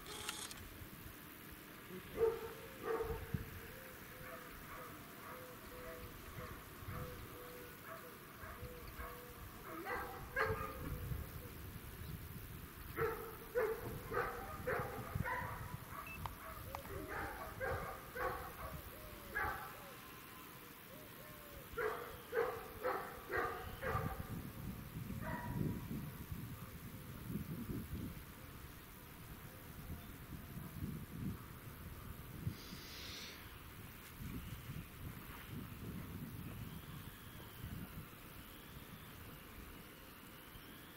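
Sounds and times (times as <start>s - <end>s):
dog barking: 2.1s - 3.2s, 4.2s - 7.2s, 7.9s - 10.9s, 13.0s - 19.8s, 21.8s - 24.3s, 25.2s - 25.6s.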